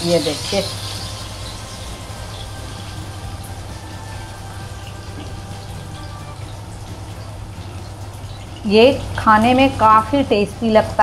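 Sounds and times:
fish sizzling in hot oil: 0:00.0 - 0:11.0.

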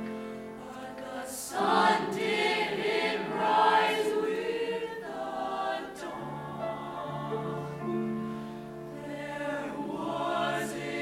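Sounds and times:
choir singing a cappella: 0:00.0 - 0:11.0.

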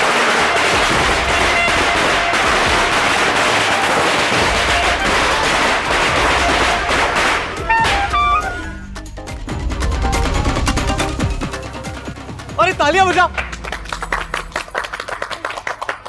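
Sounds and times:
firecrackers crackling: 0:00.0 - 0:08.9, 0:09.9 - 0:16.0
music playing: 0:00.9 - 0:15.5.

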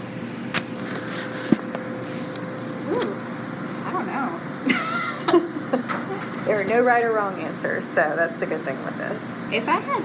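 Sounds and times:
laundry machines humming: 0:00.0 - 0:10.0.

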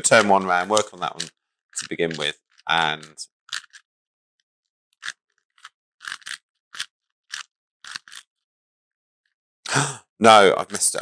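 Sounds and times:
puzzle cube plastic clicking turns: 0:00.1 - 0:03.9, 0:05.0 - 0:08.4.

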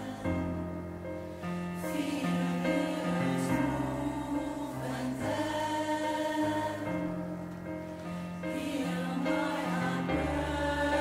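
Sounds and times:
mixed choir singing: 0:00.0 - 0:00.7, 0:01.8 - 0:07.4, 0:08.4 - 0:11.0.

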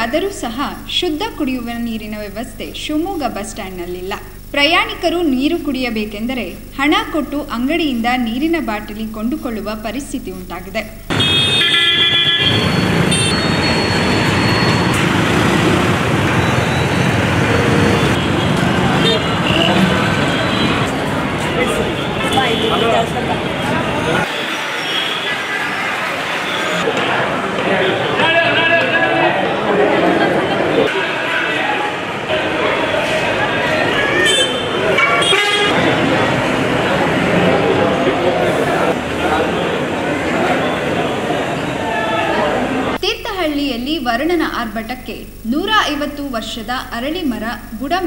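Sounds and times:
people talking: 0:00.0 - 0:11.0, 0:20.9 - 0:24.8, 0:35.8 - 0:48.0
street traffic road noise: 0:10.4 - 0:43.6
vehicle horn honking: 0:11.1 - 0:14.9, 0:17.6 - 0:20.9, 0:21.6 - 0:26.9, 0:34.2 - 0:35.8.

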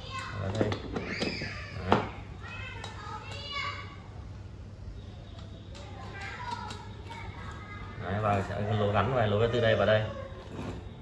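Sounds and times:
children calling and playing: 0:00.0 - 0:11.0.

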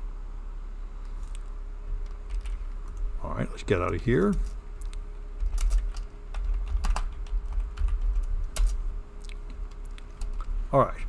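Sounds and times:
faint steady hum: 0:00.0 - 0:11.0
typing on computer keyboard: 0:02.0 - 0:03.0, 0:05.4 - 0:08.8.

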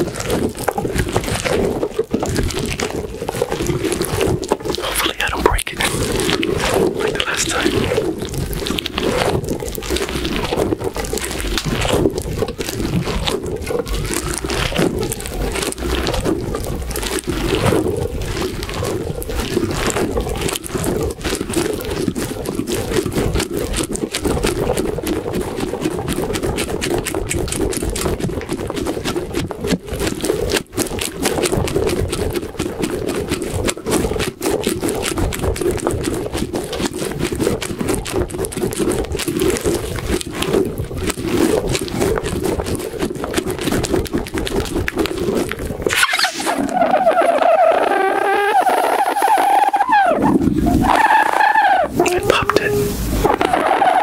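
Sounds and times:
squishy ball squeezed and rubbed: 0:02.3 - 0:20.3, 0:24.1 - 0:54.0.

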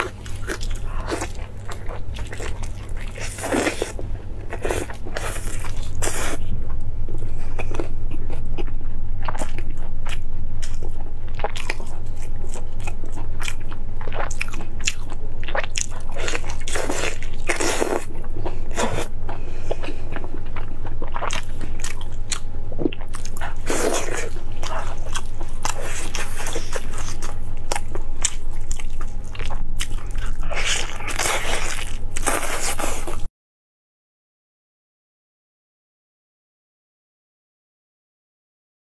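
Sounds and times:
person chewing meat: 0:00.0 - 0:33.3
steady low hum: 0:00.0 - 0:33.3.

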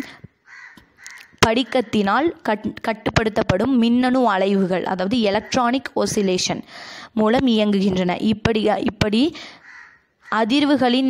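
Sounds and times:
woman breathing: 0:00.0 - 0:00.4, 0:06.6 - 0:07.2, 0:09.3 - 0:09.8
woman speaking: 0:01.4 - 0:09.5, 0:10.3 - 0:11.0.

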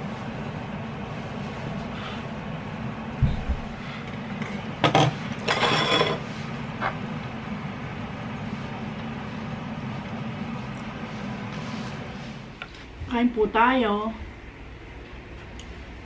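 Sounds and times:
steady low hum: 0:00.0 - 0:16.0
wood scraping over counter: 0:05.0 - 0:06.4.

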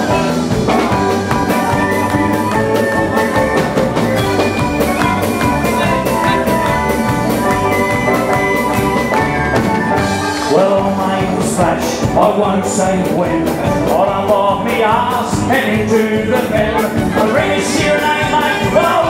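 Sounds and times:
fiddles: 0:00.0 - 0:11.0
accordion: 0:00.0 - 0:19.0
banjo: 0:00.0 - 0:19.0
steady drum beat: 0:00.0 - 0:19.0.

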